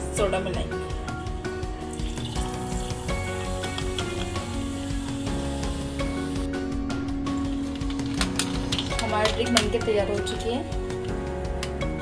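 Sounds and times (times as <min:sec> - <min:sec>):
background music: 0:00.0 - 0:12.0
soda pouring over ice: 0:01.9 - 0:05.3.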